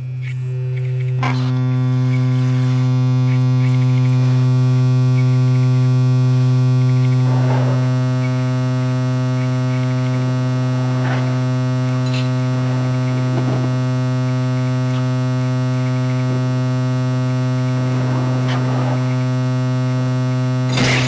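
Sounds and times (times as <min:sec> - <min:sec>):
low electronic drone: 0:00.0 - 0:21.0
noisy swells: 0:04.4 - 0:20.7.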